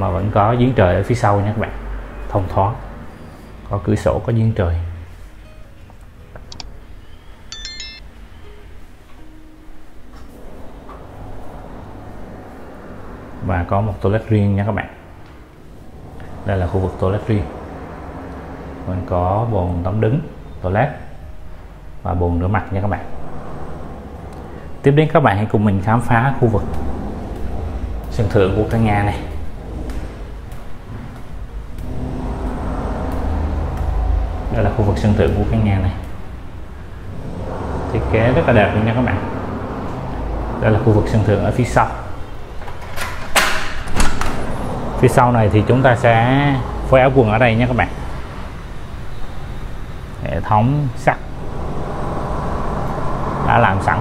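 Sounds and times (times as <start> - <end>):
distant road traffic hum: 0.0 - 54.0
high chime notes: 7.0 - 9.8.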